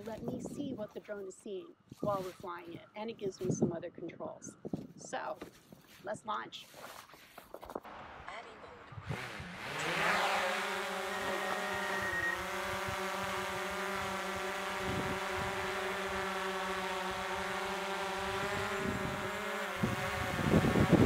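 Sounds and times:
drone propellers whining: 9.0 - 21.0.

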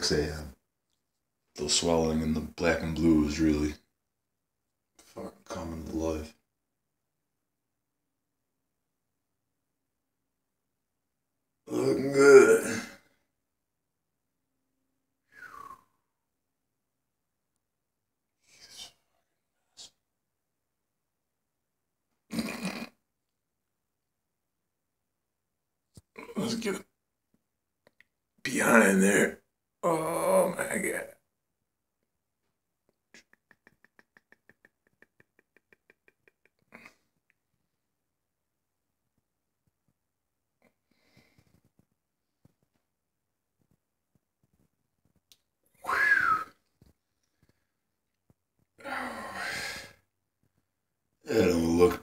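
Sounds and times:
person vocal noise: 29.8 - 30.7, 48.8 - 49.9.

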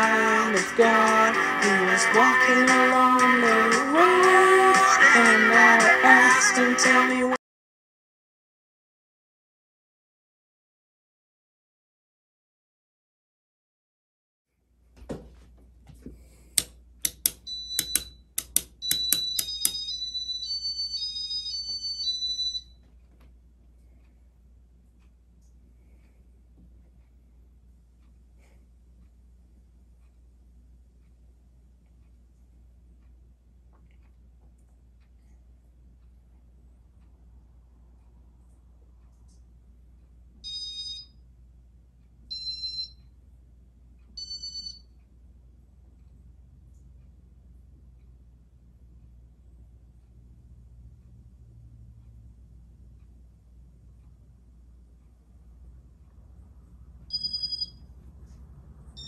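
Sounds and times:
faint low hum: 14.5 - 59.0
sharp clicks: 16.6 - 19.9
high-pitched electronic beeps: 17.4 - 22.7, 57.1 - 57.9.

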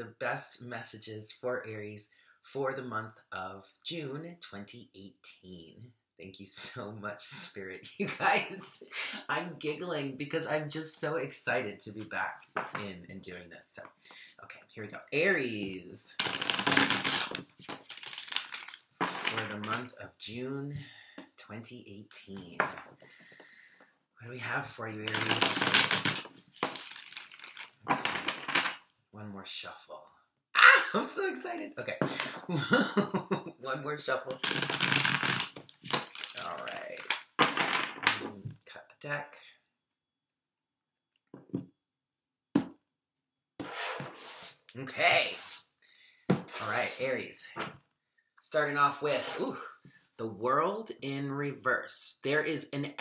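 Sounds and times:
cards being riffle-shuffled: 16.2 - 19.7, 25.1 - 28.8, 34.3 - 38.3.

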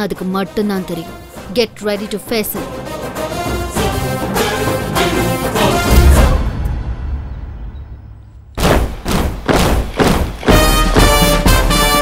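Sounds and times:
brass band playing a march: 2.8 - 6.3, 9.6 - 12.0
heavy marching drum beats: 8.6 - 12.0.

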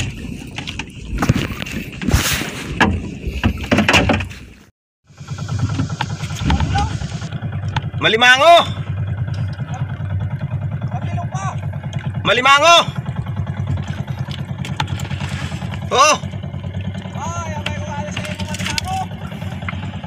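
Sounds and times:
boat engine throbbing: 0.0 - 4.3, 5.0 - 20.0
water noise: 0.0 - 20.0.

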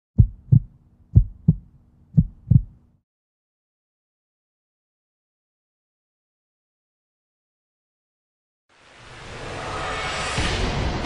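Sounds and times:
heartbeat thumps: 0.2 - 2.8.

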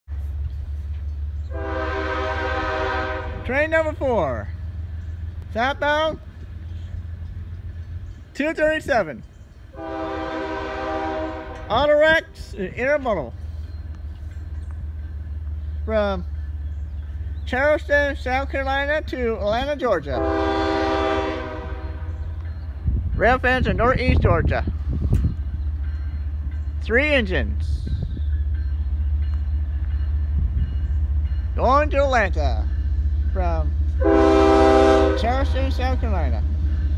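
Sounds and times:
diesel locomotive rumble: 0.1 - 36.9
locomotive air horn chord: 1.5 - 3.5, 9.8 - 11.8, 20.2 - 22.1, 34.0 - 35.9.

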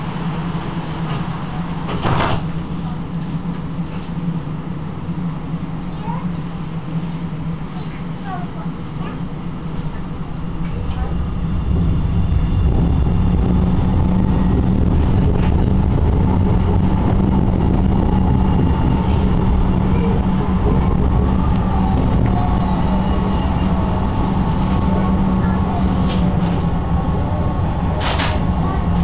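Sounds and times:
tram wheels and motor rumbling: 0.0 - 29.0.

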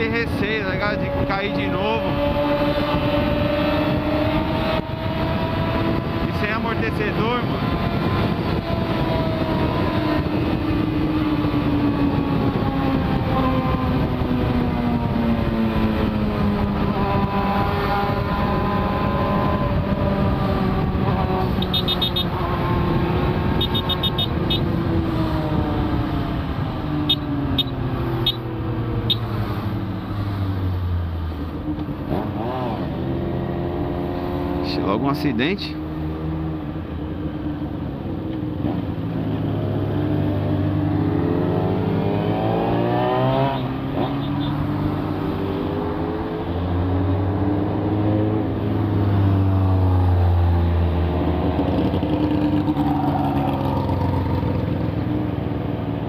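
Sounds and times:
wind rush: 0.0 - 30.9.

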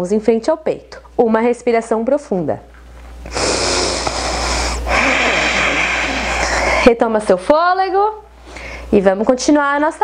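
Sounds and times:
woman breathing deeply: 3.3 - 6.9, 8.4 - 8.9.

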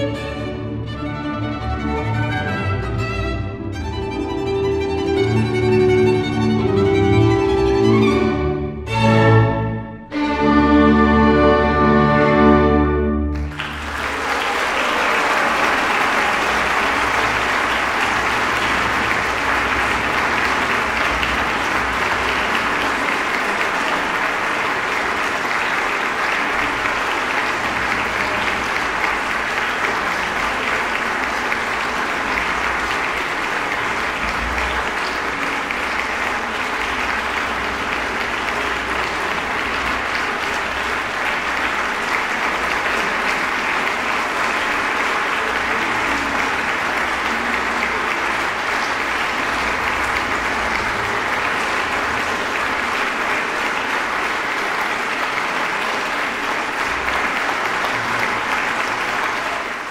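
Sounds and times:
audience applauding: 0.0 - 9.5, 10.1 - 59.9.

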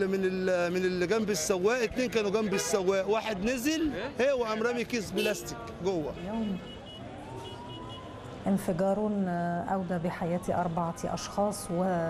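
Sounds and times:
emergency vehicle siren: 6.3 - 8.5, 9.8 - 12.0.

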